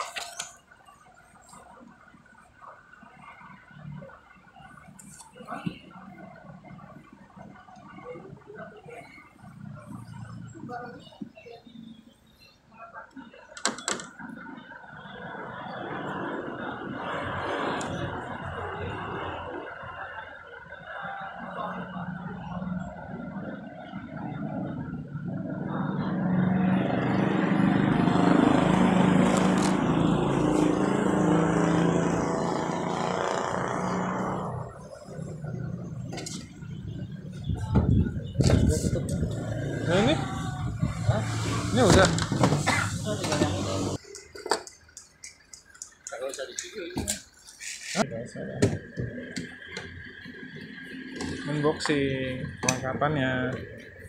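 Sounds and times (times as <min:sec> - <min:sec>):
indistinct voices talking: 0:00.0 - 0:54.0.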